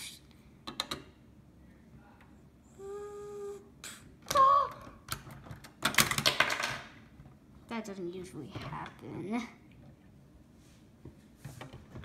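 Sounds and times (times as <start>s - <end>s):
hummed tone: 2.7s - 4.0s.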